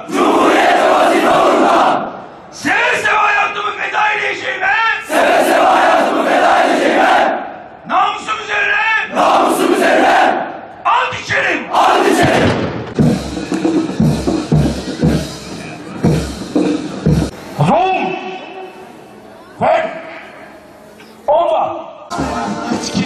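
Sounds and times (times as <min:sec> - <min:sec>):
soldiers chanting in unison: 0:00.0 - 0:02.2, 0:05.1 - 0:07.6, 0:09.1 - 0:10.6, 0:11.7 - 0:12.5.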